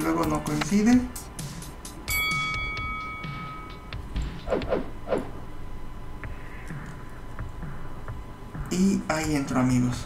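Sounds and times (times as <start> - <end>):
bell-like notification chime: 2.1 - 4.0.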